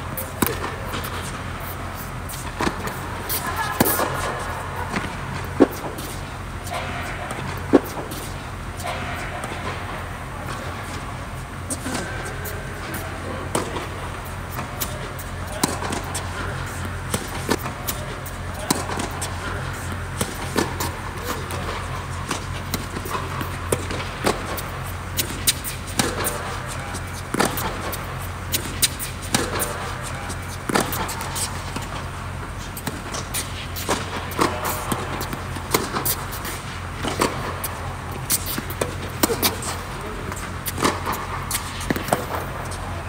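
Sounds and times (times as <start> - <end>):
steady low hum: 0.0 - 43.0
tennis balls struck and bouncing: 0.0 - 43.0.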